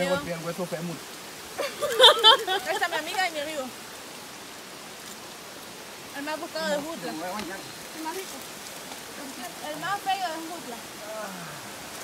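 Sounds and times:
river flowing: 0.0s - 12.0s.

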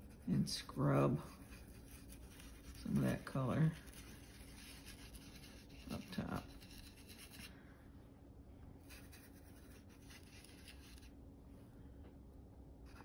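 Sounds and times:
brush scrubbing wet paper: 0.0s - 7.5s, 8.8s - 11.2s
low steady hum: 0.0s - 13.0s.

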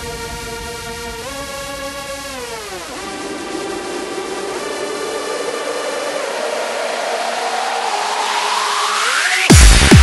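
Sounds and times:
rising hissing noise sweep: 0.0s - 9.5s.

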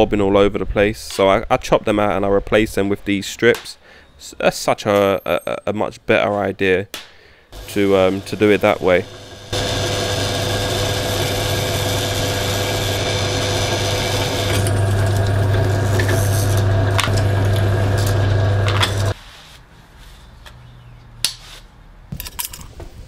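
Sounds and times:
drill bit cutting steel: 7.6s - 19.2s
pillar drill motor hum: 7.6s - 19.2s.

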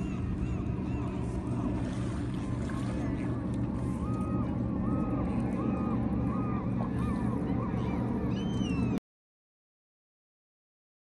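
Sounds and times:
birds calling: 0.0s - 2.0s, 3.9s - 9.0s
steady low rush of noise: 0.0s - 9.0s.

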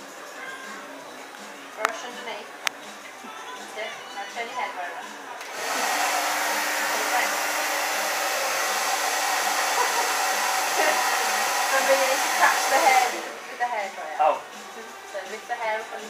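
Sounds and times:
hair dryer blowing: 5.4s - 13.9s.

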